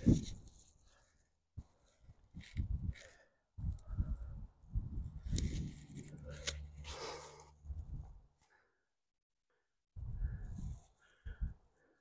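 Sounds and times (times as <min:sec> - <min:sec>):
low rumble: 0:03.7 - 0:08.3
person breathing hard and grunting: 0:06.1 - 0:07.7.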